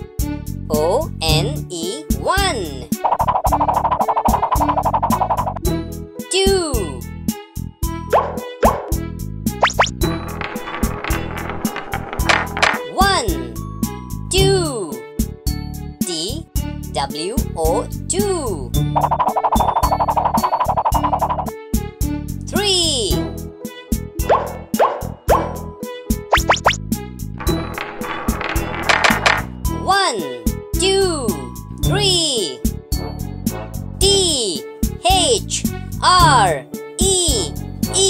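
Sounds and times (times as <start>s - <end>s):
children's music with steady beat: 0.0s - 11.1s, 12.3s - 38.0s
ball rolling along a track: 3.0s - 5.6s, 9.8s - 12.9s, 19.0s - 21.5s, 27.4s - 29.6s
rising cartoon plops: 3.0s - 5.6s, 9.6s - 10.0s, 19.0s - 21.5s, 26.3s - 26.8s.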